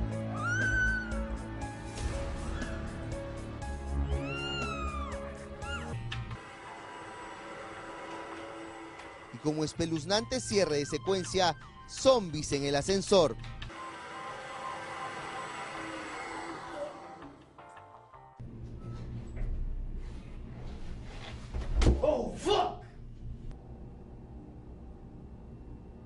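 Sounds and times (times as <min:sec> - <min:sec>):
background music with low notes: 0:00.0 - 0:15.8
long high wailing cry: 0:00.2 - 0:01.6, 0:03.9 - 0:06.0
elevator machinery whirring: 0:04.1 - 0:12.2, 0:13.2 - 0:17.6
faint hum: 0:22.8 - 0:26.0.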